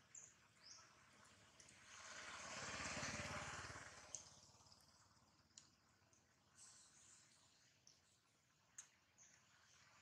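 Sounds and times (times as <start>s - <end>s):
vehicle engine passing: 1.8s - 4.8s
faint bird chirps: 4.3s - 10.0s.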